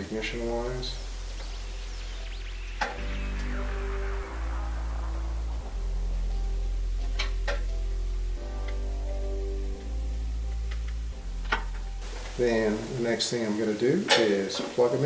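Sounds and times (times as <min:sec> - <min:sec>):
background music chords: 0:00.0 - 0:14.1.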